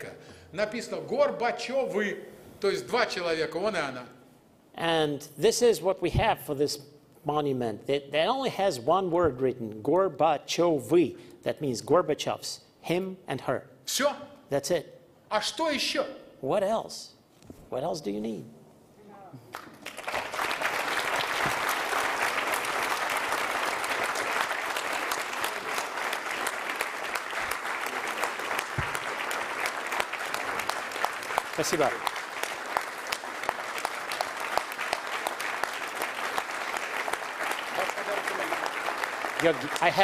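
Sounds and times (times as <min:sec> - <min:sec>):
audience applauding: 0:19.5 - 0:40.0.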